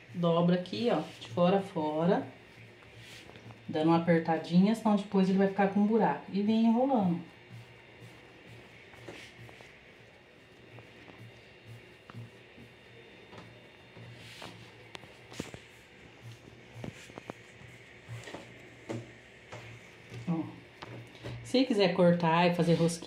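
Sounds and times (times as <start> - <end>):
dough rolled and pressed by hand: 0.2 - 21.6.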